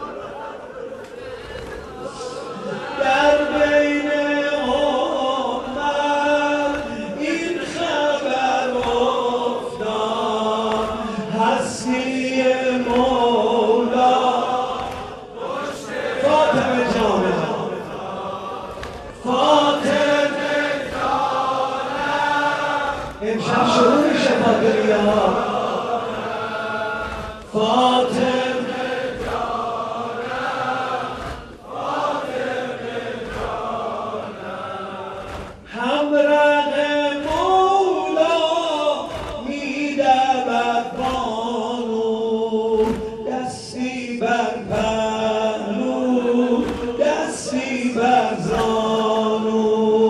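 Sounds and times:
man chanting into a microphone: 0:01.3 - 0:50.0.

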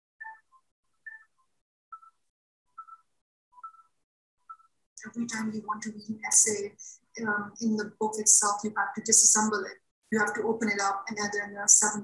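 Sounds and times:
short electronic tones: 0:00.2 - 0:02.2.

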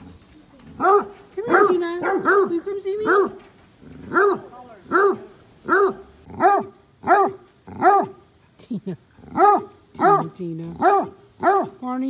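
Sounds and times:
dog barking: 0:00.8 - 0:03.4, 0:04.1 - 0:08.2, 0:09.3 - 0:11.8.

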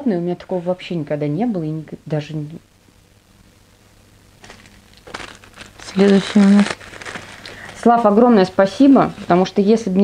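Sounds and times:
packaging crinkling: 0:04.4 - 0:08.2.

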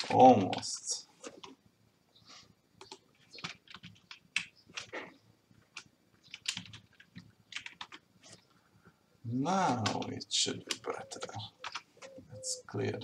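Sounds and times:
typing on computer keyboard: 0:02.8 - 0:05.1, 0:05.7 - 0:08.0.

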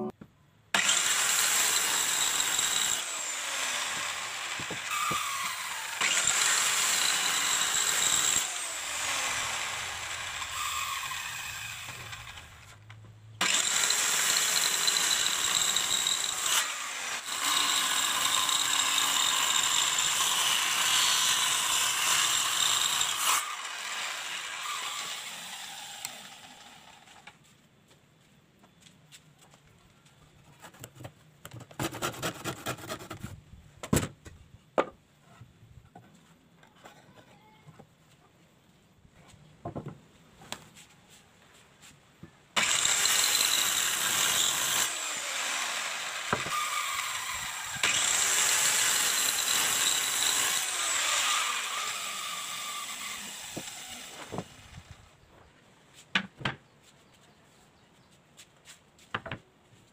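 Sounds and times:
circular saw ripping wood: 0:00.8 - 0:27.4, 0:42.6 - 0:55.2.

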